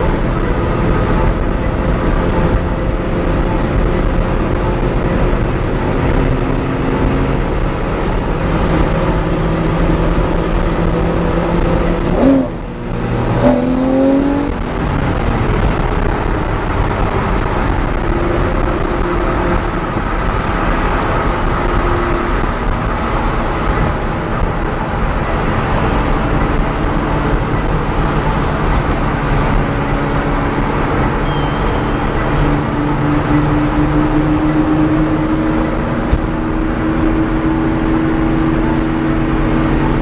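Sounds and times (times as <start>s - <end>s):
car engine: 0.0s - 40.0s
road noise inside car: 0.0s - 40.0s.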